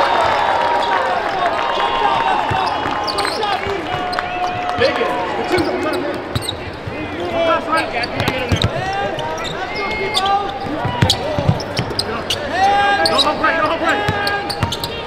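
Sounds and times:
indistinct voices in arena: 0.0 - 15.0
sneakers squeaking on floor: 1.5 - 15.0.

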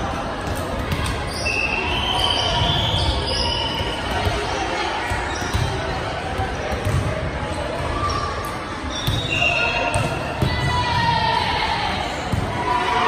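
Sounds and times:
voices of players and spectators: 0.0 - 13.0.

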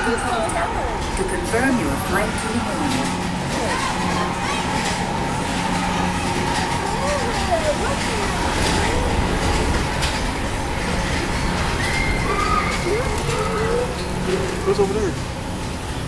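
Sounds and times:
faint voices: 0.0 - 15.4
ride train rumbling on track: 0.0 - 16.0.

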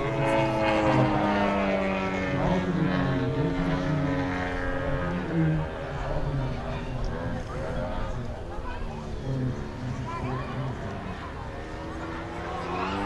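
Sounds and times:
model aircraft engine droning: 0.0 - 13.0.

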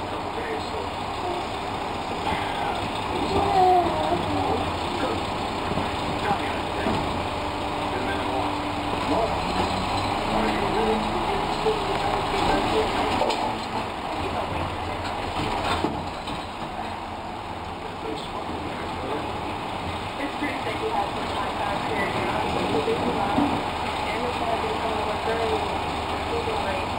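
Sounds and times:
garbage truck engine running: 0.0 - 26.9
hydraulic arm lifting cart: 0.0 - 26.9.

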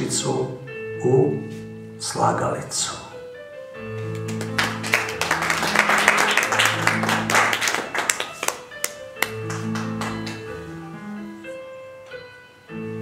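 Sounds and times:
digital piano chords: 0.0 - 13.0
audience applauding: 4.1 - 10.6.

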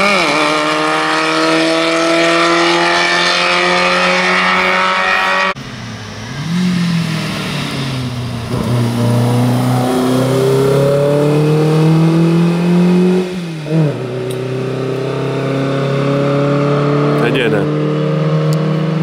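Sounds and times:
high-revving engine cutting off: 0.0 - 19.0
race car engine revving: 0.0 - 19.0.

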